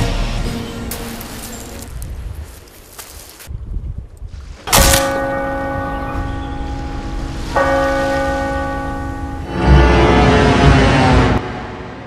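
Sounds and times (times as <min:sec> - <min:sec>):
loud low surge of sound: 0:06.8 - 0:12.0.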